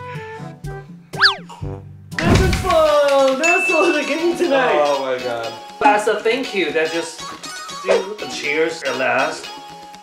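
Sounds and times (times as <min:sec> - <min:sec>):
playful plucked background music: 0:00.0 - 0:10.0.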